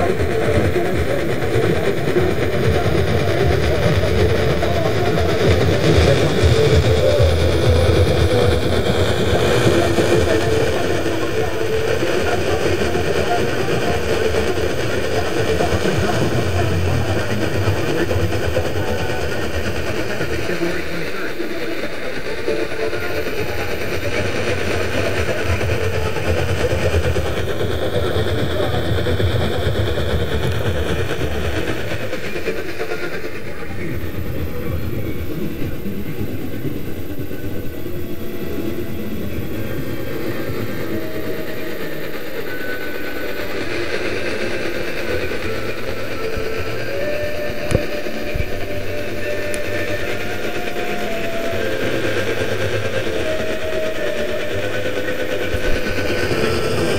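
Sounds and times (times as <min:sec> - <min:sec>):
am radio static: 0:00.0 - 0:56.9
weak radio station: 0:00.0 - 0:56.9.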